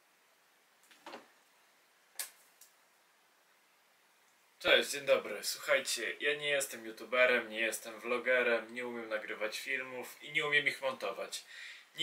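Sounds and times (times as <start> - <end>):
sharp click: 2.2 - 2.8.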